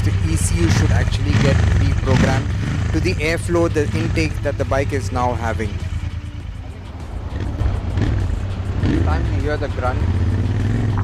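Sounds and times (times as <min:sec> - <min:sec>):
motorcycle engine pulling: 0:00.0 - 0:05.6.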